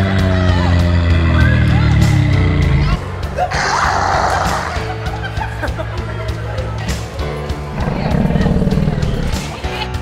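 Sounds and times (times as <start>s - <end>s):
background music: 0.0s - 10.0s
low rumbling growl: 0.4s - 3.0s, 7.6s - 9.6s.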